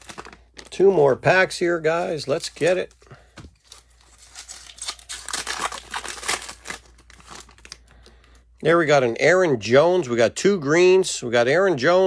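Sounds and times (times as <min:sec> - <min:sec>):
foil wrapper crinkling and tearing: 0:00.0 - 0:01.3, 0:02.2 - 0:08.4.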